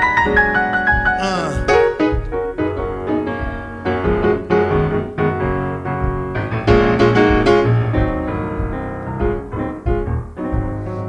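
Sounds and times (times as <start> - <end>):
gospel soul piano: 0.0 - 11.0.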